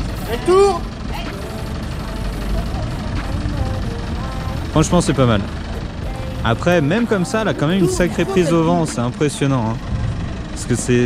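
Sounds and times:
diesel engine low rumble: 0.0 - 11.0
person calling out: 0.2 - 0.9, 6.4 - 9.0.

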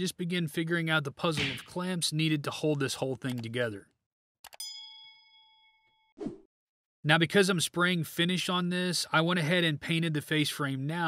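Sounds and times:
bright bell ding: 4.6 - 6.1.

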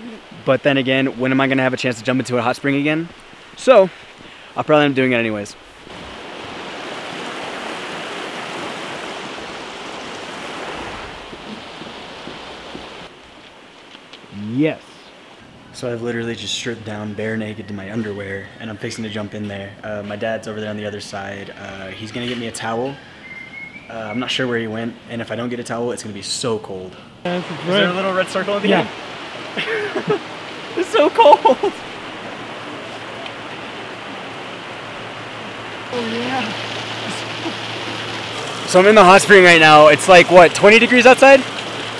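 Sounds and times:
creek rushing: 0.0 - 19.2, 27.2 - 41.9.

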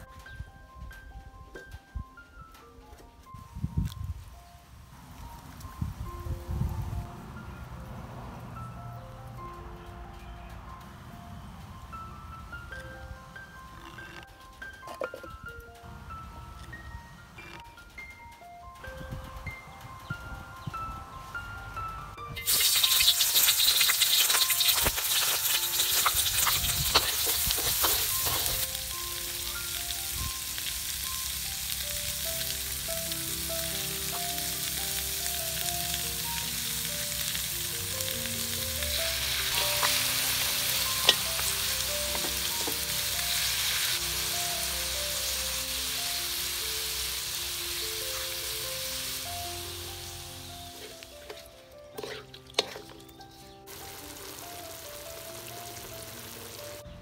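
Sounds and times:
gentle background music: 0.0 - 57.0
hot oil sizzling in wok: 22.3 - 52.9, 53.7 - 56.8
wooden spatula stirring: 50.8 - 53.0.

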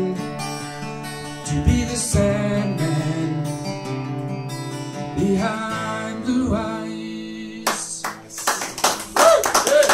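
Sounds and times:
acoustic guitar chord ringing: 0.0 - 7.6
audience applause: 8.4 - 9.9.

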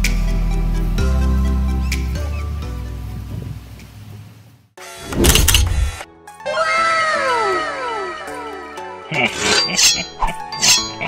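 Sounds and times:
background music: 0.0 - 3.8, 4.8 - 11.0.

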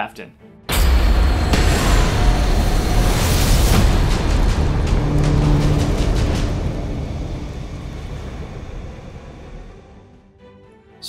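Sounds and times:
deep rumble and low drone: 1.1 - 10.2.

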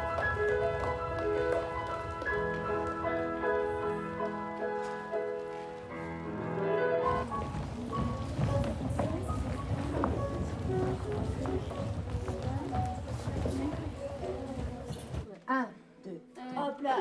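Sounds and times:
pointe shoes clacking on wooden floor: 0.0 - 5.9, 7.2 - 15.3
rehearsal music: 0.0 - 14.8
low chatter: 7.0 - 17.0.

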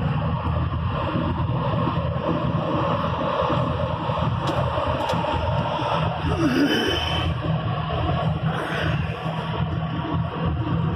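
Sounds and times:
truck cab road rumble: 0.0 - 10.9.

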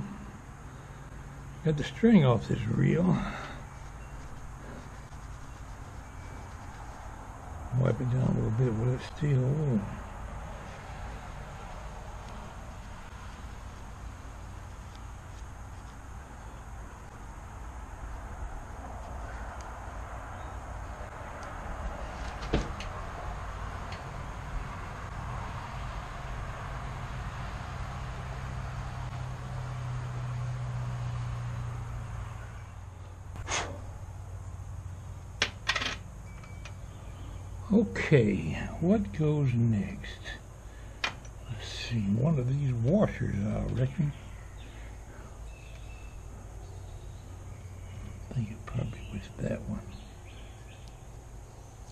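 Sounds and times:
low steady hum: 0.0 - 51.9
steel wool rubbing metal: 3.8 - 7.4.

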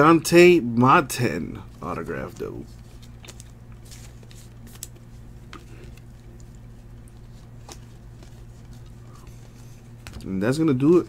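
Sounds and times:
trading cards being handled: 1.5 - 11.0.

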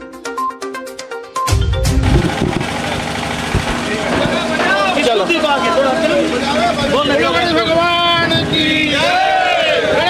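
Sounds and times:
low microphone rumble: 1.8 - 4.6
crowd background rumble and hum: 1.8 - 10.0.

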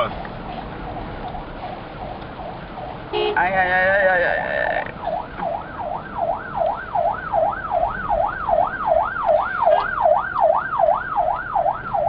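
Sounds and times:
emergency siren yelp: 0.8 - 12.0.

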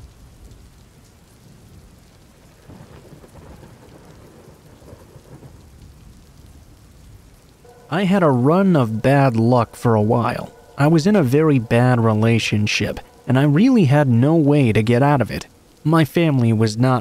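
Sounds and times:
low rumble of thunder: 0.0 - 17.0
steady rain: 0.0 - 17.0.

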